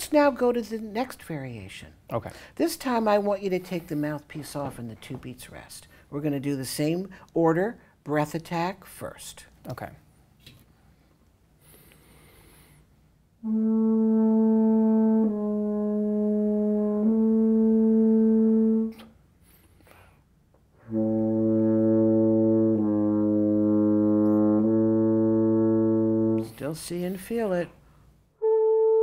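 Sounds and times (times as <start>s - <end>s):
intake of breath: 11.6s - 13.0s
french horn sustained notes: 13.4s - 19.0s, 20.8s - 26.8s, 28.4s - 29.0s.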